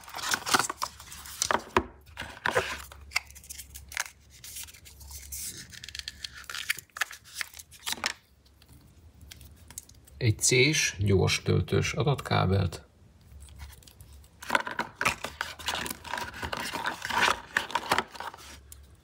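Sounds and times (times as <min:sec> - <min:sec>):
cardboard and paper rustling: 0:00.0 - 0:08.2, 0:13.4 - 0:18.7.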